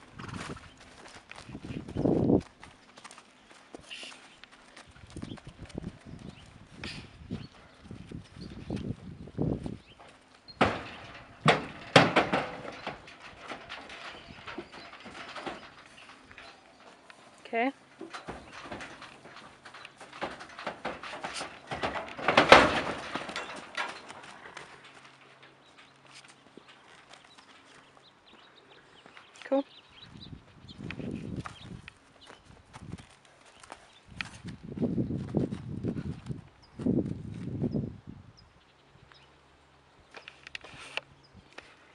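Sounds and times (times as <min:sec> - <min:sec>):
horse hooves clattering on trailer floor: 0:00.0 - 0:29.3
horse hooves on dirt: 0:00.0 - 0:37.8.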